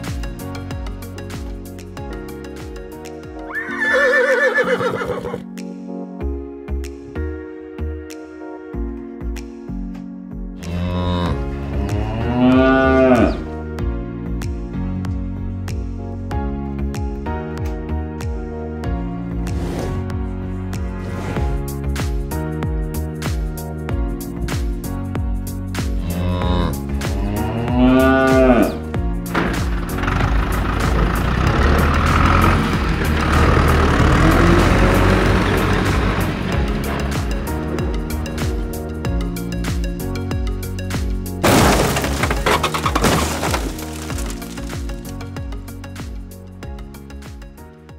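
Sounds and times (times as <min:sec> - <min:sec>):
background music: 0:00.0 - 0:47.9
cow mooing: 0:10.7 - 0:13.5, 0:26.0 - 0:28.9
tractor engine running: 0:29.2 - 0:39.4.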